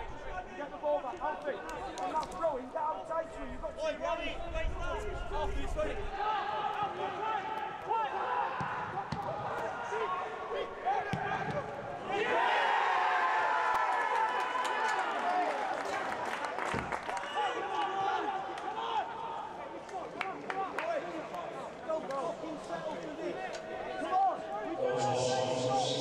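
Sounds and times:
footballers shouting: 5.1 - 26.0
players celebrating: 6.1 - 26.0.

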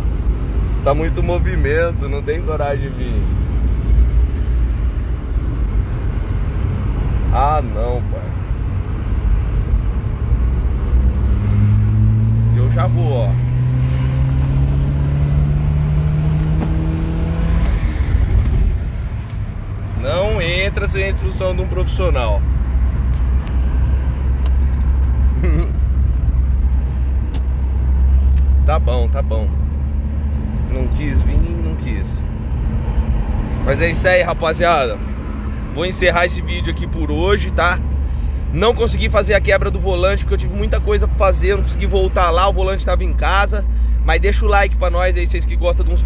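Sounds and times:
car engine rumbling in cabin: 0.0 - 46.0.

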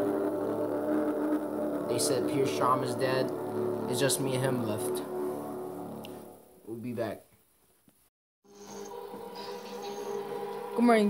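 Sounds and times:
droning chord music: 0.0 - 7.0, 8.5 - 11.0.

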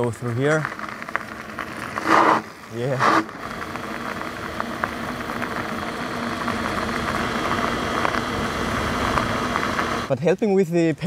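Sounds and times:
electric motor whine: 0.0 - 10.1
tyres rolling on gravel: 0.0 - 11.0
wind: 0.0 - 11.0.

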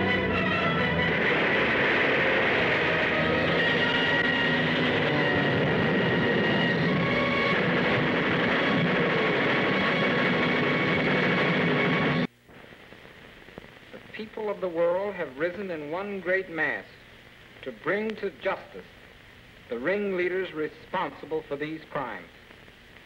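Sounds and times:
dense noisy roar: 0.0 - 12.8
faint hiss: 12.2 - 23.0.

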